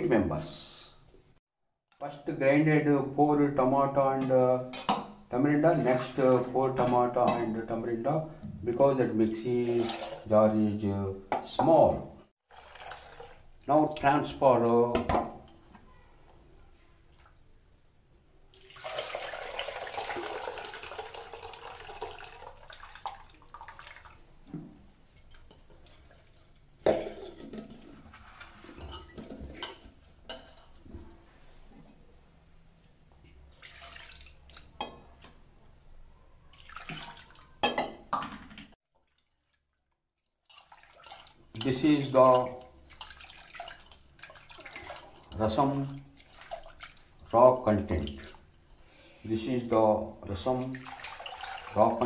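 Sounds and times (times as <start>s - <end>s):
pot and utensils clattering: 4.2s - 11.6s, 25.2s - 32.0s, 36.8s - 38.8s
liquid splashing into a pot: 12.5s - 13.7s, 18.5s - 28.4s, 33.5s - 35.1s, 36.5s - 48.7s, 50.5s - 52.0s.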